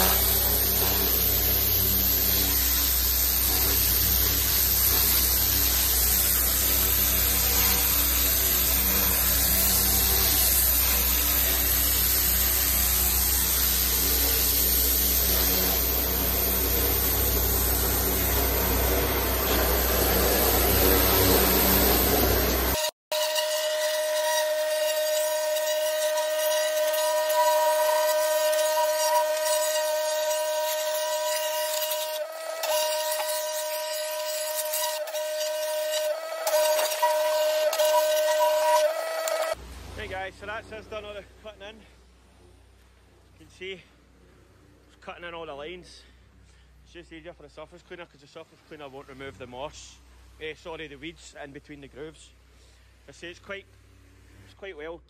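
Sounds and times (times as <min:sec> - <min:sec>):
pressure washer engine running: 0:00.0 - 0:22.8
pressure washer jet spraying paving: 0:00.0 - 0:22.9, 0:24.2 - 0:41.2
pitched machine whine: 0:00.0 - 0:39.6.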